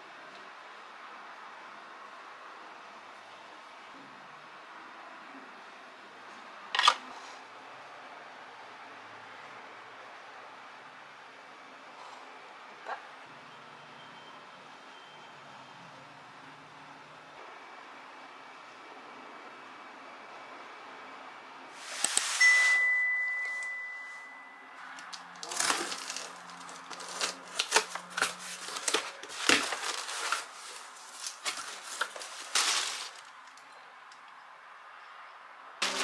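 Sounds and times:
high notification ding: 22.4s - 24.8s.

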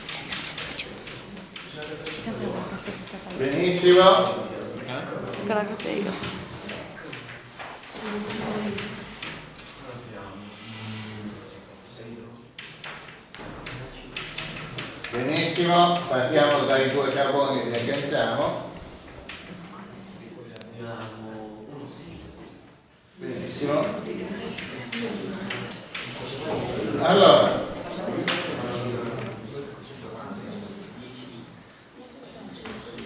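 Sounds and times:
chalk tapping on blackboard: 0.0s - 2.2s
indistinct talking: 0.0s - 9.2s
people speaking indistinctly: 5.3s - 6.5s.

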